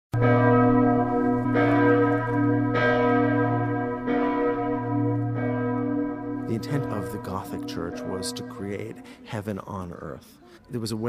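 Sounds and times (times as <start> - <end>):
large church bell tolling: 0.2 - 9.9.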